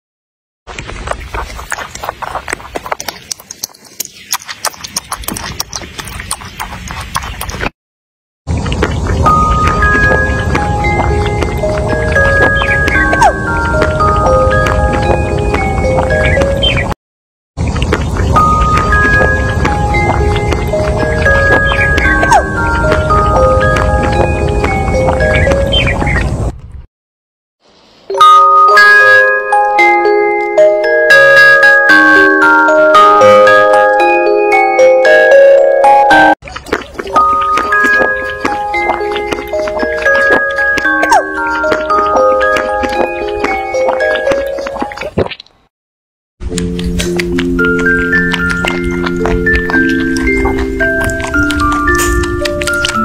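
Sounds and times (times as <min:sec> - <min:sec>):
rabbit chewing: 0:00.7 - 0:07.7, 0:17.6 - 0:25.9, 0:36.4 - 0:45.4, 0:46.6 - 0:53.0
bell-like tune: 0:09.3 - 0:16.8, 0:18.4 - 0:25.8, 0:28.1 - 0:36.4, 0:37.2 - 0:44.8, 0:47.0 - 0:53.0.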